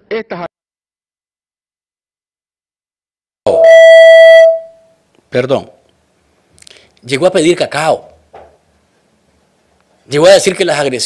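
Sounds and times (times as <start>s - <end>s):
loud electronic beep: 3.5s - 4.9s.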